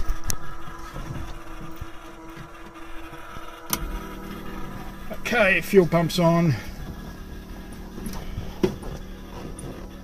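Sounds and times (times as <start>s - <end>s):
fuel pumps humming: 0.0s - 10.0s.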